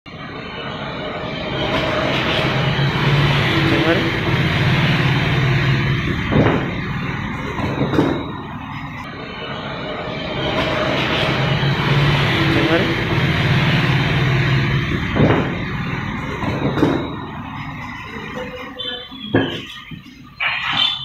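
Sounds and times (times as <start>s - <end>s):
machinery hum: 0.1s - 21.0s
sharp knocks: 6.2s - 6.7s, 15.0s - 15.6s.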